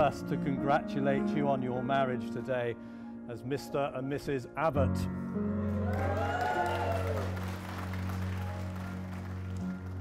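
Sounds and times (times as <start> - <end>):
soft background music: 0.0 - 10.0
crowd cheering: 5.7 - 9.0
guests applauding: 5.7 - 10.0.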